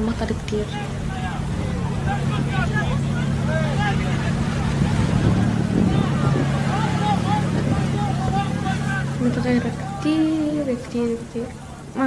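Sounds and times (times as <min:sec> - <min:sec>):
boat motor droning: 0:00.0 - 0:12.0
people calling out: 0:00.0 - 0:12.0.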